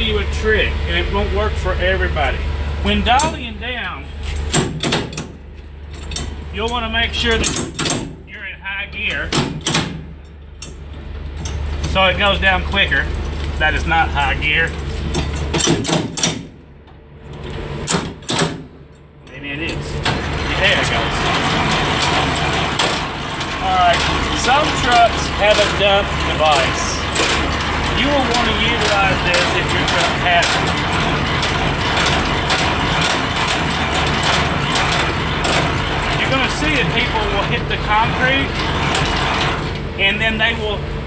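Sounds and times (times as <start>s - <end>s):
steady low hum: 0.0s - 41.0s
metal crank handle clanking: 3.0s - 3.5s, 4.3s - 8.2s, 8.9s - 16.7s, 17.3s - 40.4s
sharp metal clicks: 4.4s - 8.2s, 9.0s - 12.0s, 15.1s - 36.8s.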